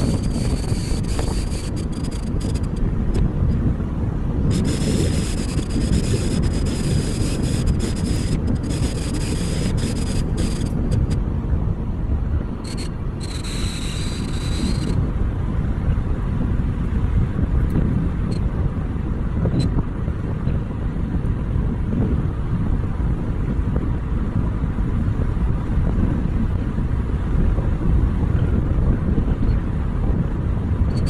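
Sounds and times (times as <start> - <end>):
tyre and wind rumble: 0.0 - 31.0.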